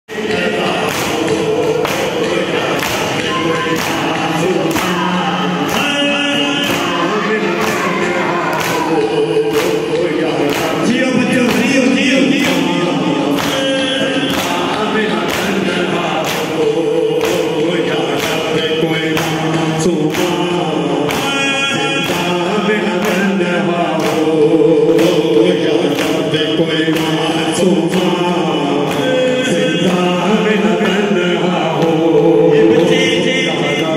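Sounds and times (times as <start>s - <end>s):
men chanting together: 0.1s - 33.9s.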